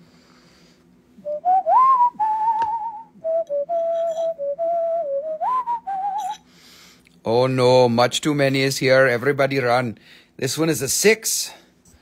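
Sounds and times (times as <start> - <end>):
person whistling a tune: 1.2 - 6.4.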